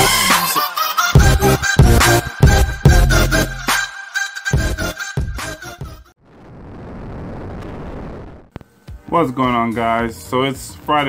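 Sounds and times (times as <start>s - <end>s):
music: 0.0s - 6.2s, 8.6s - 11.0s
rumbling rush of noise: 6.2s - 8.5s.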